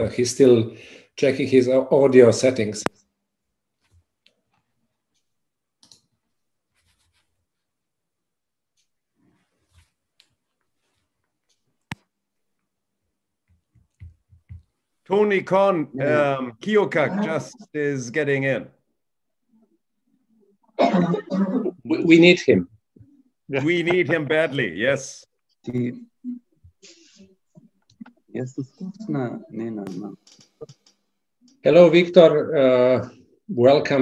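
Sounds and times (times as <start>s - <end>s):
man speaking over video call: 0.0s - 3.0s, 15.0s - 18.8s, 21.0s - 22.8s, 23.5s - 26.1s, 28.2s - 30.3s, 31.5s - 34.0s
man clearing throat: 20.8s - 21.8s.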